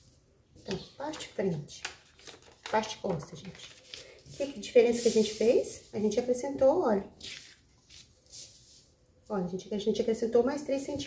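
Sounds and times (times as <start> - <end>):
paper rustling: 0.6 - 5.9, 7.2 - 9.0.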